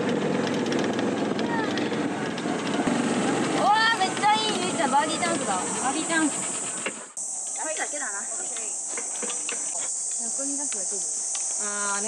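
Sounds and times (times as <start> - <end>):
insects buzzing: 2.8 - 12.0.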